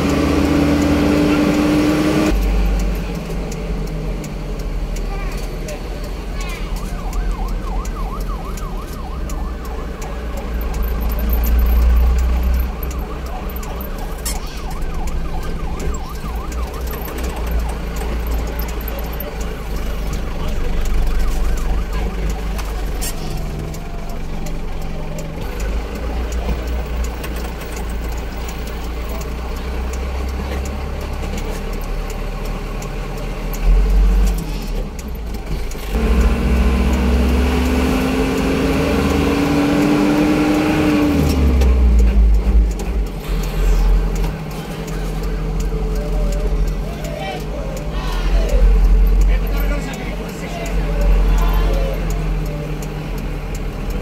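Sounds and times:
road noise: 0:00.0 - 0:54.0
vehicle engine: 0:00.0 - 0:54.0.

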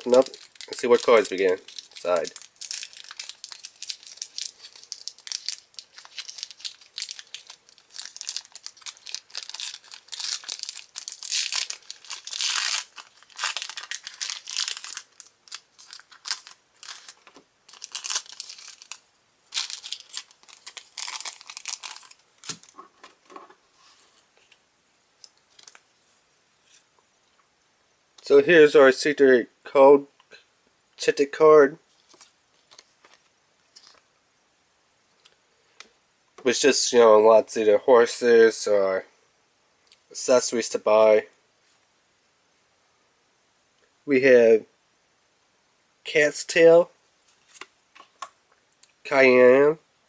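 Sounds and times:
foil pack tearing and crinkling: 0:00.0 - 0:22.7.

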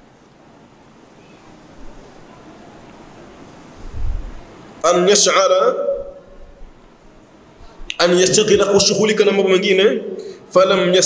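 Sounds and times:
man speaking: 0:04.8 - 0:06.2, 0:07.9 - 0:11.0.

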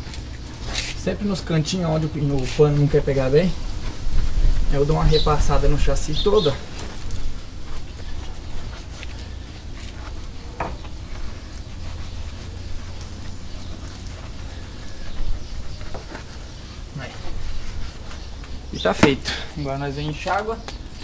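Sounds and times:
steady low rumble: 0:00.0 - 0:21.0
bristle brush scrubbing metal: 0:05.1 - 0:21.0.

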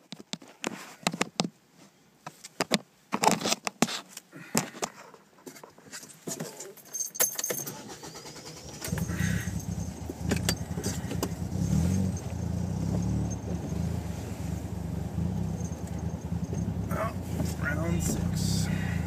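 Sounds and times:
handling clicks and rattles: 0:04.8 - 0:13.8, 0:15.4 - 0:18.5
deep subwoofer bass: 0:09.0 - 0:19.0.

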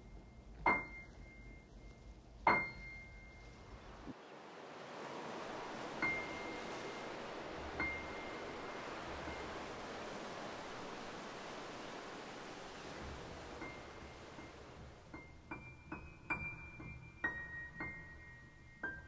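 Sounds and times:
soft steady rushing: 0:00.0 - 0:19.0.

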